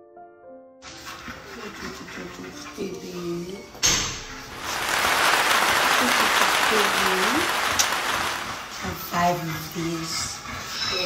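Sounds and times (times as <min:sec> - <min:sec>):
loud steady rushing noise: 0:04.5 - 0:08.9.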